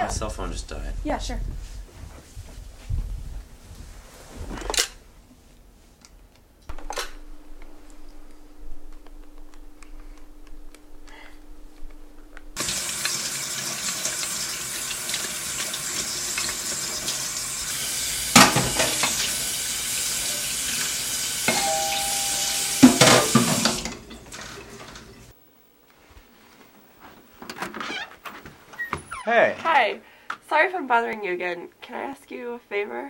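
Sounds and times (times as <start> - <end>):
tap running water into sink: 12.6 - 25.2
dishes knocking in sink: 18.3 - 19.2, 21.5 - 24.0.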